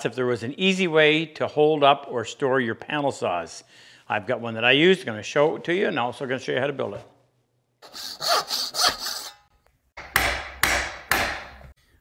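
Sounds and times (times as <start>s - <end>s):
hard hammer blows ringing: 10.0s - 11.6s.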